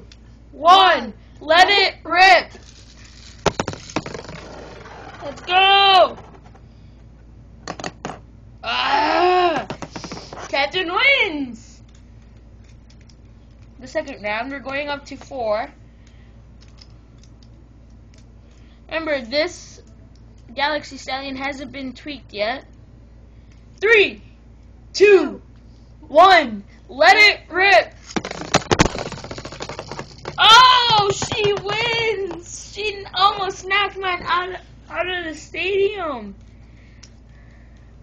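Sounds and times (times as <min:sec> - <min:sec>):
plastic spinning tops clacking: 0:02.6 - 0:06.6, 0:09.7 - 0:10.4, 0:28.0 - 0:32.6
handling noise: 0:28.1 - 0:32.5.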